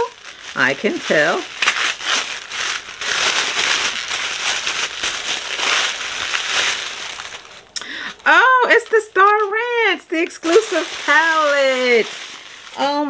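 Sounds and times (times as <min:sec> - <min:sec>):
wrapping crinkling: 0:00.0 - 0:13.0.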